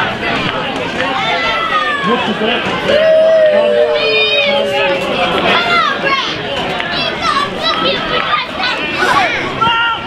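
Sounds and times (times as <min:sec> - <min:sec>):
children's voices: 0:00.0 - 0:10.0
crowd shouting and chatter: 0:00.0 - 0:10.0.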